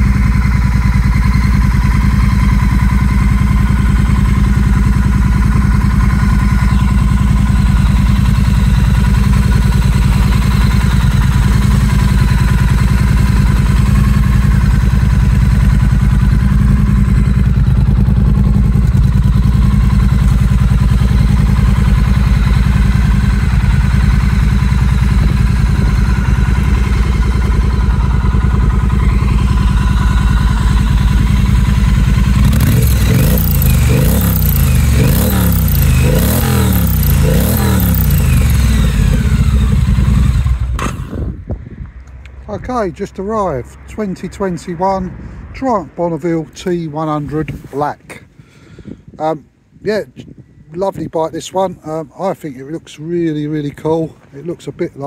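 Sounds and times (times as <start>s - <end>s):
motorcycle engine idling: 0.0s - 45.6s.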